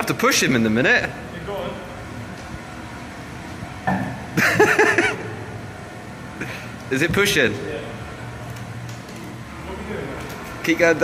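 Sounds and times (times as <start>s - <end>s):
electric vehicle hum: 0.6s - 11.0s.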